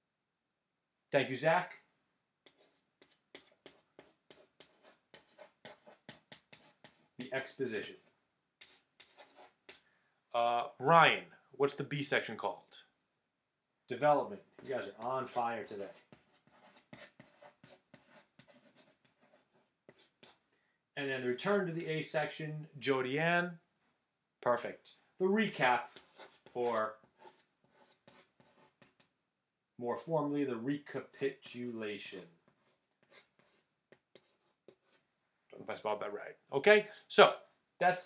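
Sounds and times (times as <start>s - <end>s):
chalk scratching on chalkboard: 2.4s - 9.8s, 14.6s - 20.4s, 21.2s - 22.4s, 25.5s - 29.1s, 31.4s - 35.0s.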